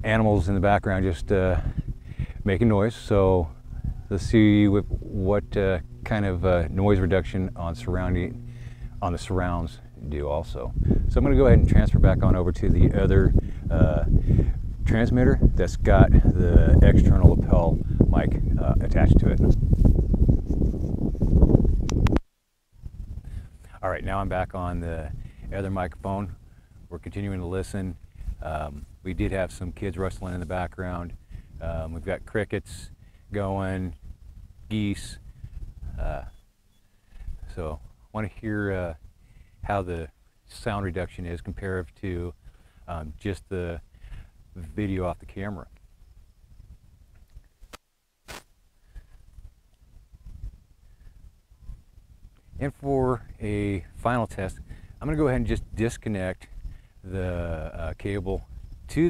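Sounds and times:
wind and handling rumble: 0.0 - 47.8, 48.8 - 59.0
quiet outdoor background: 0.0 - 59.0
microphone click: 21.6 - 22.3.

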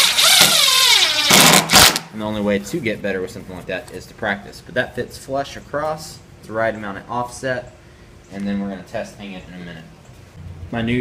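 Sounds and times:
cordless driver motor whine: 0.0 - 1.4.

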